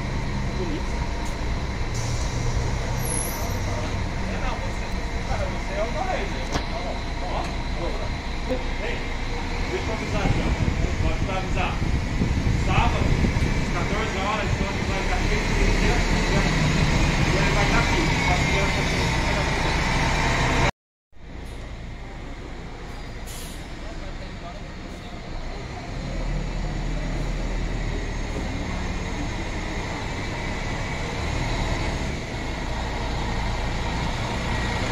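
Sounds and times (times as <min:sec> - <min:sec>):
bus engine running: 0:00.0 - 0:34.9
street noise: 0:00.0 - 0:34.9
people's voices: 0:00.1 - 0:20.7, 0:21.8 - 0:31.6.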